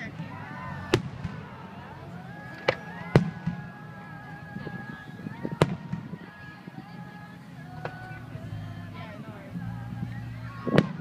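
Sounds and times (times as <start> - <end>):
fireworks bursting: 0.0 - 1.8, 2.5 - 6.6, 10.5 - 11.0
background voices: 0.0 - 11.0.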